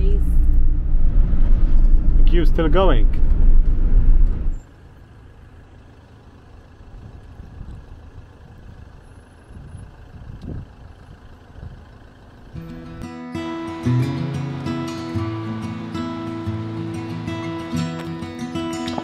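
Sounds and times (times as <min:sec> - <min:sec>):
road and engine rumble in vehicle: 0:00.0 - 0:19.0
music: 0:12.6 - 0:19.0.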